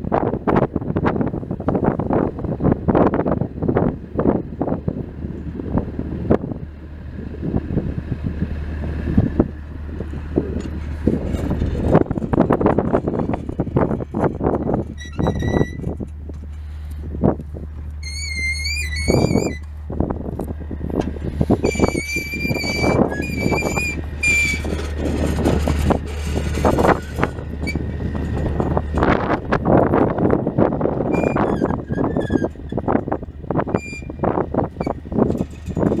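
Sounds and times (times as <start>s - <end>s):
engine idling: 0.2s - 36.0s.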